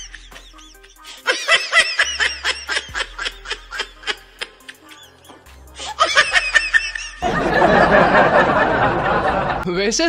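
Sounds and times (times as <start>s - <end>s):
music: 0.0s - 8.8s
laughter bursts: 0.0s - 9.6s.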